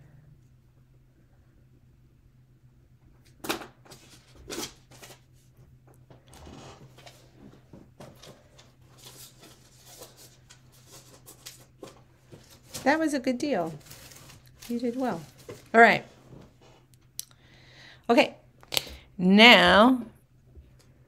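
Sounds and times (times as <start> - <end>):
low electrical hum: 0.0 - 21.0.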